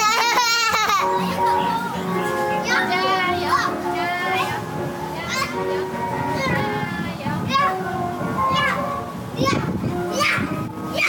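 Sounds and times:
carousel music: 0.0 - 11.0
children calling out: 0.0 - 11.0.

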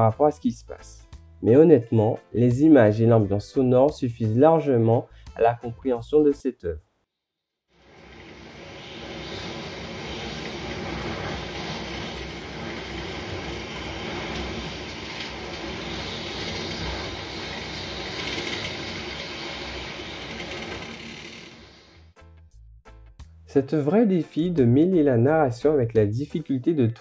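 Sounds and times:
dense rushing noise: 7.8 - 21.8.

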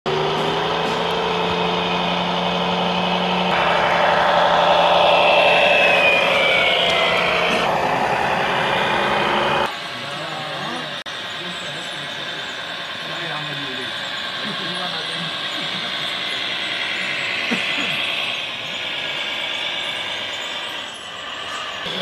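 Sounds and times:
high whine falling in pitch: 0.1 - 10.4, 11.2 - 22.0
model truck engine drone: 0.1 - 22.0.

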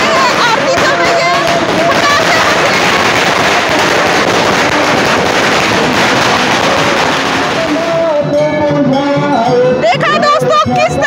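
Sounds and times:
firecrackers crackling: 0.0 - 8.9.

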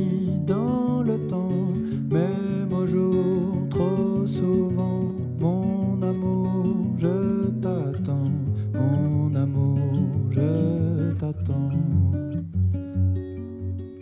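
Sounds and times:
man singing: 0.0 - 12.5
acoustic guitar strumming: 0.0 - 14.0.

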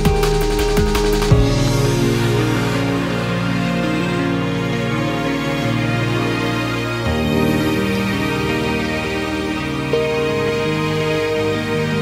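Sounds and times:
drum hit: 0.0 - 2.5
held soft music tones: 0.0 - 12.0.

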